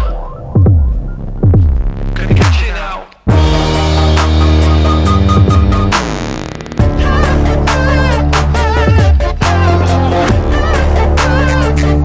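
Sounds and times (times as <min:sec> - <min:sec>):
electronic music: 0:00.0 - 0:12.0
deep bass note sliding down: 0:03.3 - 0:09.0.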